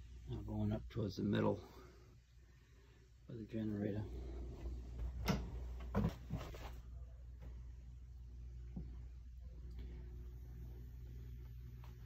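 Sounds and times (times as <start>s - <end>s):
low hum: 6.7s - 12.0s.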